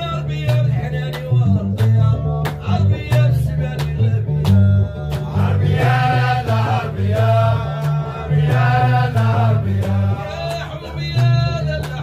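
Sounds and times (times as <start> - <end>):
man singing: 0.0 - 12.0
plucked bass lute: 0.0 - 12.0
rhythmic handclaps: 0.0 - 12.0.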